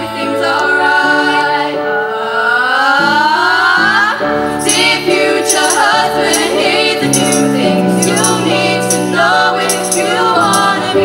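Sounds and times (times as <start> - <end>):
young women singing harmony: 0.0 - 11.0.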